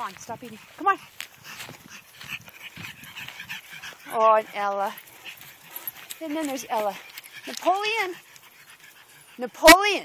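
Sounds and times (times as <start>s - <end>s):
dog breathing: 0.1s - 10.0s.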